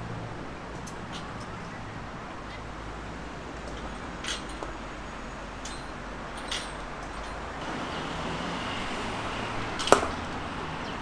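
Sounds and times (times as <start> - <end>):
outdoor background hum: 0.0 - 11.0
cricket bat striking ball: 9.8 - 10.2.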